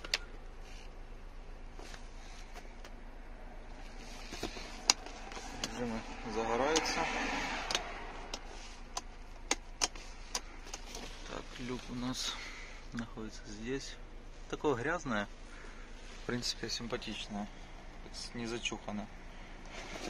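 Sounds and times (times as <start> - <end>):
clicks of car controls: 0.0 - 0.4, 4.3 - 5.8, 6.6 - 7.0, 7.6 - 11.2.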